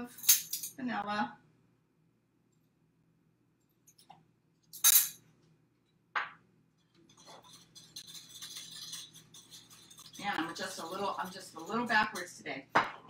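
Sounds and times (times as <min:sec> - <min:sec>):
whisk stirring batter: 0:06.8 - 0:12.3
utensil clinking on glass bowl: 0:07.0 - 0:12.3.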